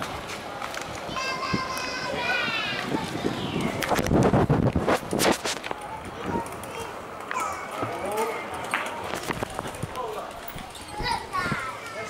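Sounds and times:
people talking: 1.1s - 3.9s, 5.5s - 12.0s.

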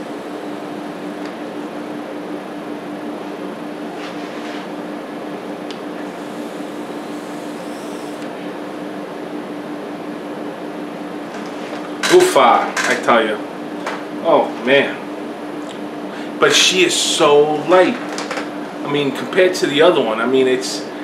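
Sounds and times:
constant low hum: 0.0s - 21.0s
cooling fans whirring: 0.0s - 21.0s.

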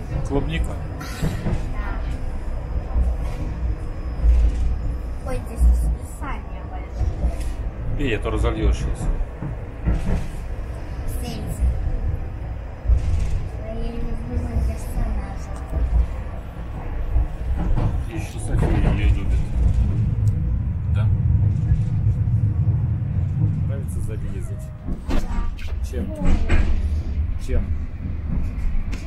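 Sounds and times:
bus rumbling: 0.0s - 29.0s.

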